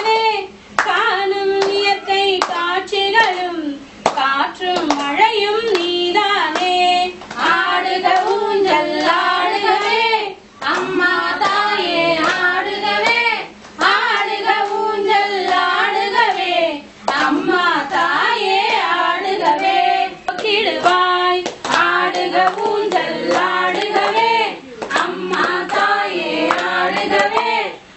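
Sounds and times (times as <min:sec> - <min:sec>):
women singing devotional song: 0:00.0 - 0:27.9
sharp hand claps: 0:01.6 - 0:05.9, 0:08.1 - 0:08.4, 0:10.6 - 0:11.6, 0:12.2 - 0:14.8, 0:17.1 - 0:18.9, 0:20.3 - 0:25.9, 0:26.5 - 0:27.5.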